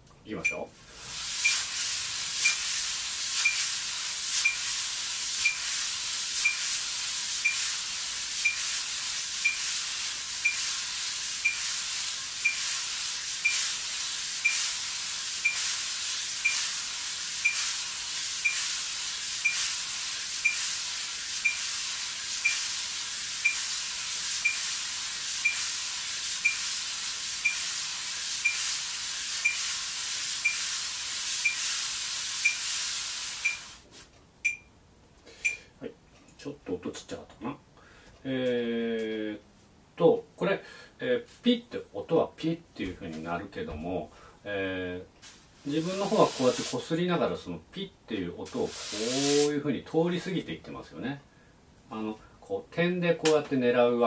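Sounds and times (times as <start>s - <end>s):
metronome beeps: 0.4s - 0.7s, 5.4s - 5.6s, 9.4s - 9.6s, 34.4s - 34.7s, 35.4s - 35.6s.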